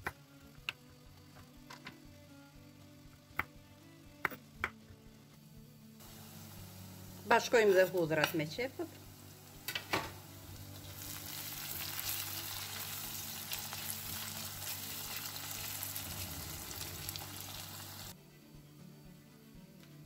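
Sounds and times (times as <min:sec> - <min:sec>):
onions sizzling in pan: 0:06.0 - 0:18.2.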